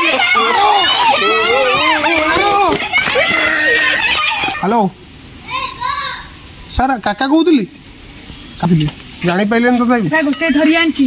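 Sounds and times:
child's voice: 5.4 - 6.4.

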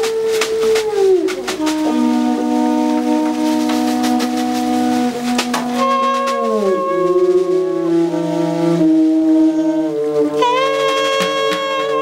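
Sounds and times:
bowed double bass: 0.0 - 12.0
saxophone long note: 0.0 - 12.0.

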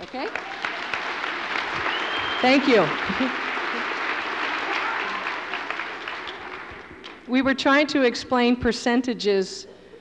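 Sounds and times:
audience applauding: 0.0 - 7.3.

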